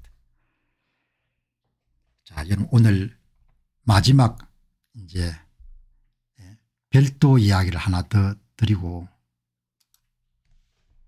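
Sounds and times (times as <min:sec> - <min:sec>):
soft breath: 0:00.3 - 0:01.6
man speaking: 0:02.3 - 0:03.2, 0:03.8 - 0:05.6, 0:06.4 - 0:09.2.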